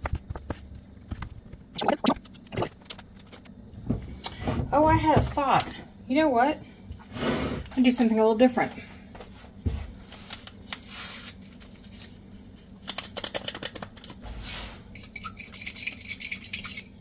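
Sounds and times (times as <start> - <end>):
paper packet crinkling: 10.2 - 14.2.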